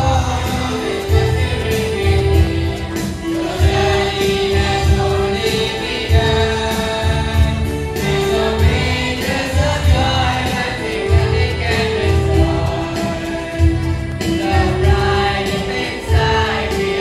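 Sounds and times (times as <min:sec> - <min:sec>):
children's choir singing: 0:00.0 - 0:17.0
low rhythmic pulse: 0:00.0 - 0:17.0.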